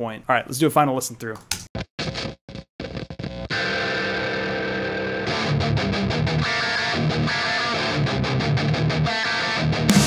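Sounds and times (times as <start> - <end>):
distorted electric guitar riff: 2.0 - 10.0.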